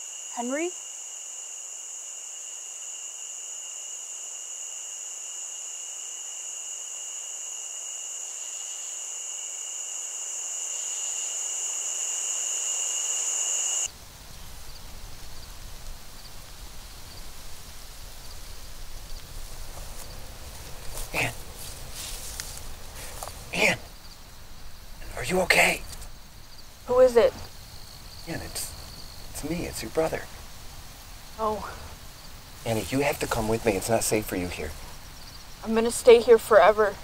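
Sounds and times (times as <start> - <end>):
insect chorus ringing drone: 0.0 - 37.0
low outdoor background: 0.0 - 37.0.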